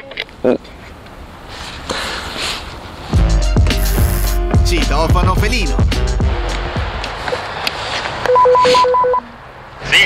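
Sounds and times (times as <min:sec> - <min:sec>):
music jingle: 0:03.2 - 0:07.0
intercom buzzer beeps: 0:08.3 - 0:09.3.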